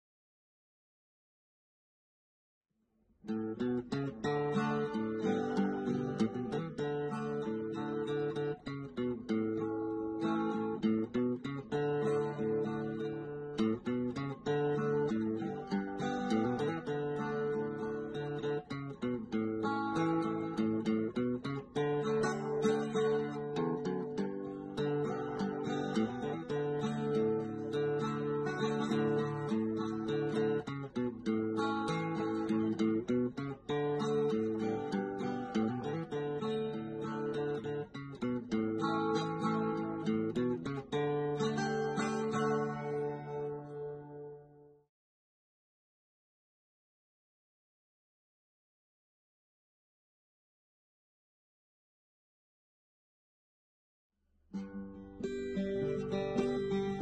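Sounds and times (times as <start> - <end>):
strummed acoustic guitar: 3.2 - 44.6, 54.5 - 57.0.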